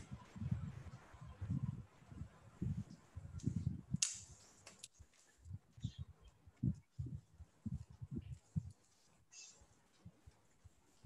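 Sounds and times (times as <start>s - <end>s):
sharp microphone click: 3.4s - 4.4s.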